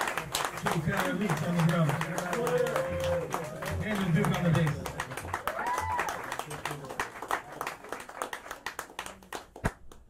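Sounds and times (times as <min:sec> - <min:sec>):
audience applauding: 0:00.0 - 0:09.8
sharp clap or knock: 0:09.6 - 0:10.0.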